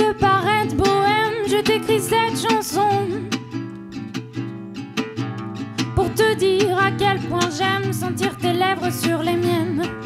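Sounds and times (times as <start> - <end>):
woman singing: 0.0 - 3.6, 5.8 - 10.0
acoustic guitar strumming: 0.0 - 10.0.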